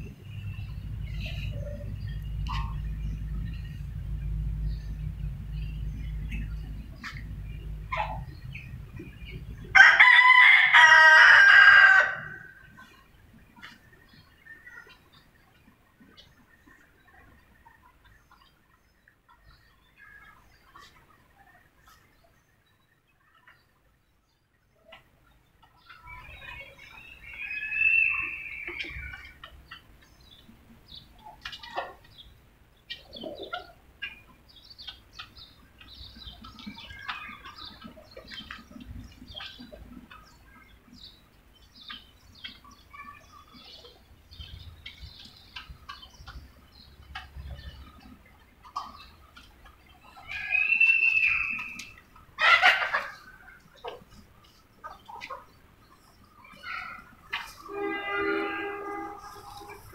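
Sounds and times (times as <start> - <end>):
chickens clucking and calling: 0.0 - 23.8, 24.8 - 59.9.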